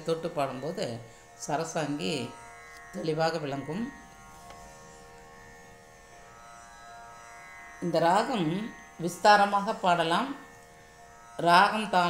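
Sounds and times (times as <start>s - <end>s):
faint drone of held tones: 0.0s - 12.0s.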